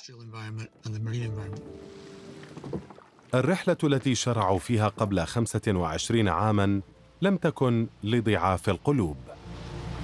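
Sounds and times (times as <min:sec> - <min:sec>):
man speaking: 0:00.0 - 0:01.6, 0:03.4 - 0:09.4
soft background music: 0:00.0 - 0:10.0.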